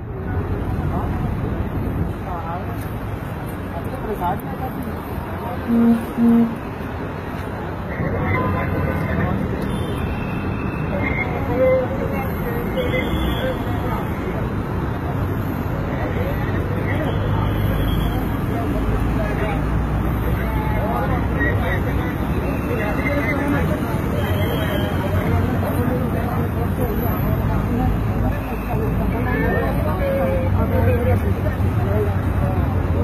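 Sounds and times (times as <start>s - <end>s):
road traffic: 0.0s - 33.0s
indistinct voices talking: 4.0s - 7.0s.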